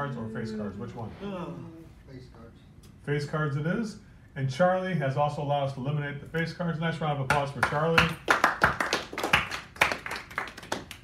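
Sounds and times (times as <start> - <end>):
people clapping: 7.3 - 11.0.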